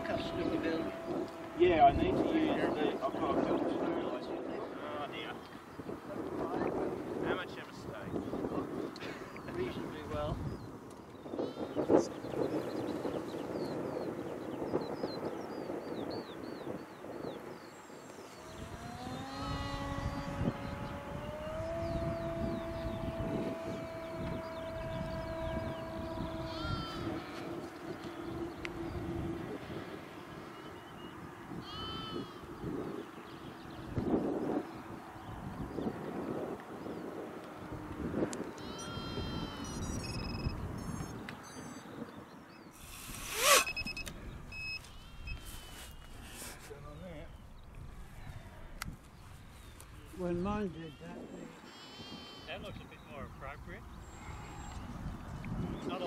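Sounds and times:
model aeroplane motor droning: 0:00.0 - 0:08.5, 0:16.6 - 0:30.9, 0:42.8 - 0:46.6
wind noise: 0:00.0 - 0:56.0.

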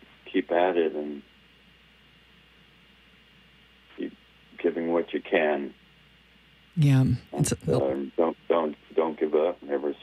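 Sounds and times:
person talking over telephone: 0:06.8 - 0:08.1.

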